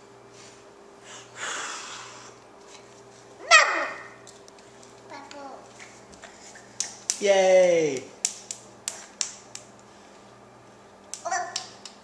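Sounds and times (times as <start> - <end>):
toddler hand claps: 6.8 - 9.8, 11.1 - 12.0.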